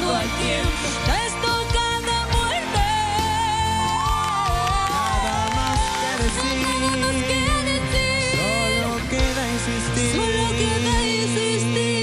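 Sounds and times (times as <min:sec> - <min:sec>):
young voices singing in harmony: 0:00.0 - 0:01.7
band playing pop ballad: 0:00.0 - 0:12.0.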